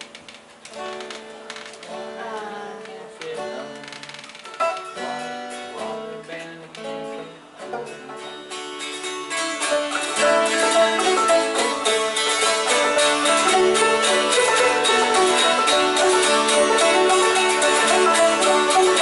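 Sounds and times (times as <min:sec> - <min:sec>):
acoustic string band playing: 0:00.0 - 0:19.0.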